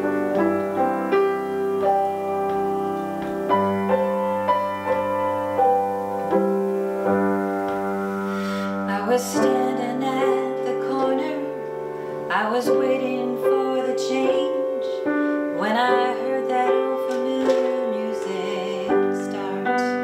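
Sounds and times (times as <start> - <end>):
grand piano accompaniment: 0.0 - 20.0
woman singing: 8.6 - 20.0.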